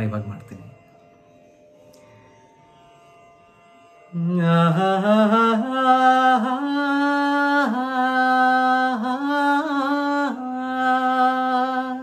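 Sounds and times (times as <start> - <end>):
man singing: 4.2 - 12.0.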